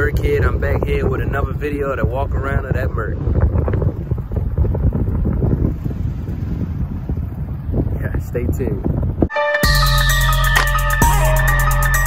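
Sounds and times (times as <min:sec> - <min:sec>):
wind buffeting microphone: 0:00.0 - 0:09.3.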